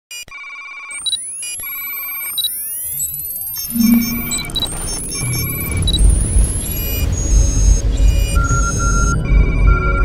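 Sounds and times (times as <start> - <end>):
computer-like beeps and blips: 2.0 - 9.2
rising synthetic sweeps: 3.7 - 6.0
low hum: 3.7 - 6.7.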